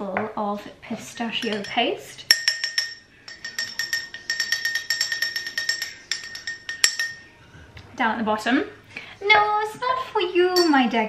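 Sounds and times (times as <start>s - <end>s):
spoon clinking against glass: 1.4s - 7.4s, 10.6s - 11.0s.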